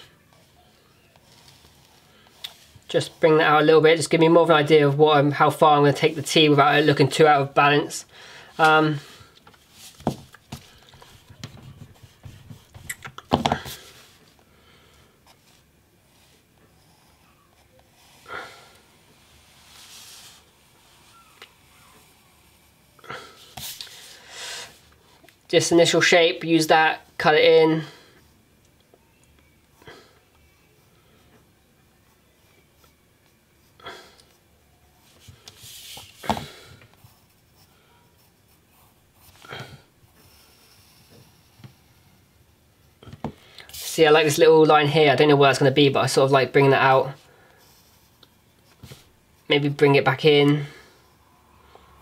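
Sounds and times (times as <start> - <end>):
pencil scratching on paper: 40.2 - 42.0.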